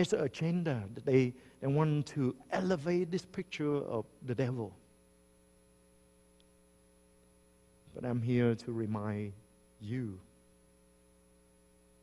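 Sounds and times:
man speaking: 0:00.0 - 0:04.8, 0:07.9 - 0:10.2
electrical mains hum: 0:00.0 - 0:12.0.

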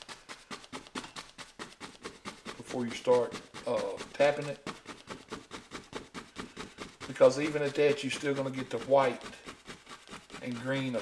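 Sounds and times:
paint brush strokes on canvas: 0:00.0 - 0:11.0.

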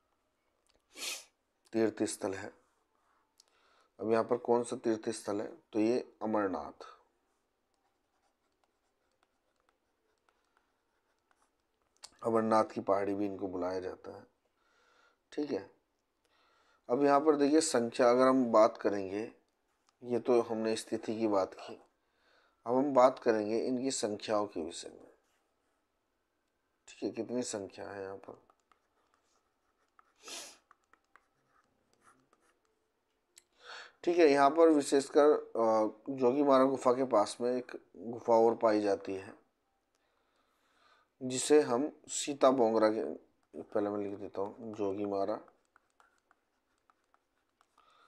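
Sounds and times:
short hiss: 0:00.9 - 0:01.4
stylus ticking on pen tablet: 0:07.7 - 0:12.2, 0:28.2 - 0:32.8, 0:43.4 - 0:48.0.

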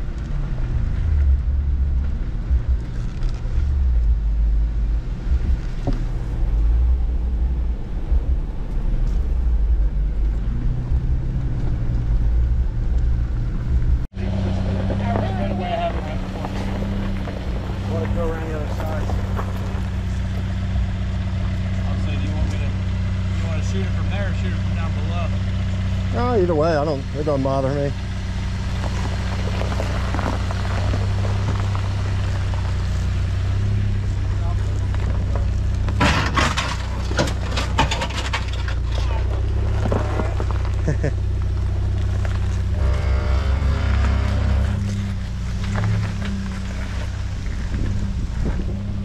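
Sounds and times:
vehicle driving over dirt trail: 0:00.0 - 0:49.0
engine idling: 0:12.1 - 0:49.0
people talking: 0:14.2 - 0:20.3, 0:21.5 - 0:28.0, 0:34.1 - 0:35.6, 0:38.9 - 0:39.4.

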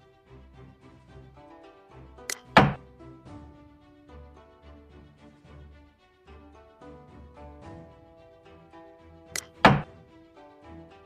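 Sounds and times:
soft background music: 0:00.0 - 0:11.0
light click: 0:02.3 - 0:02.6, 0:09.4 - 0:09.6
wooden game piece clack: 0:02.3 - 0:02.8, 0:09.4 - 0:10.0.

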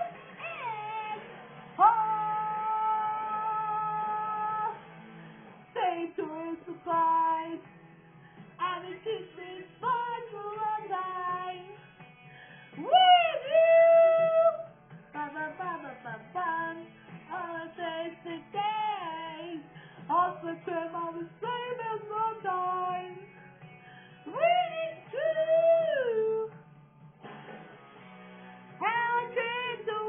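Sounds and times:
woman singing to music: 0:00.0 - 0:26.8, 0:28.5 - 0:30.0.

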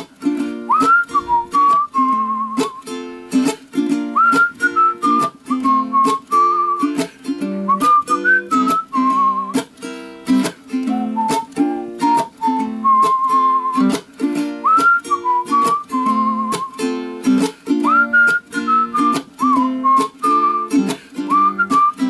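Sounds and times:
ukulele strumming chords: 0:00.0 - 0:22.0
person whistling a tune: 0:00.3 - 0:03.1, 0:03.9 - 0:09.7, 0:10.7 - 0:22.0.

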